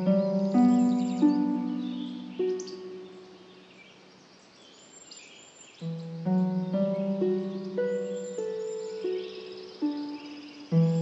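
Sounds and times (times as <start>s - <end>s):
birds chirping: 0.0s - 11.0s
slow meditation music: 0.0s - 11.0s.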